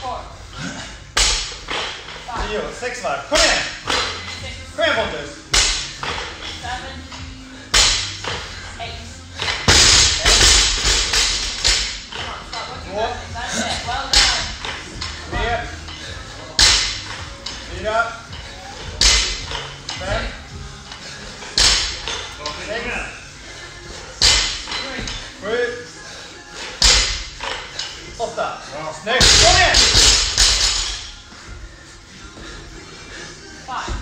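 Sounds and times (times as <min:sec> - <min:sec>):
background music with singing: 0:00.0 - 0:34.0.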